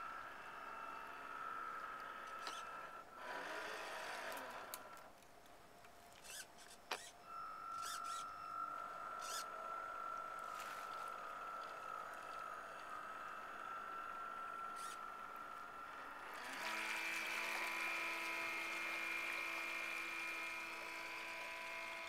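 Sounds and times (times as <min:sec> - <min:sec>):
model boat motor whining: 0:00.0 - 0:05.2, 0:06.1 - 0:22.0.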